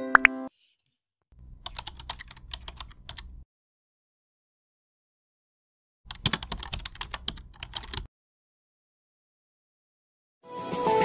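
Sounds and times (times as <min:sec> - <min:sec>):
keyboard typing clicks: 0:01.6 - 0:03.4, 0:06.1 - 0:08.1.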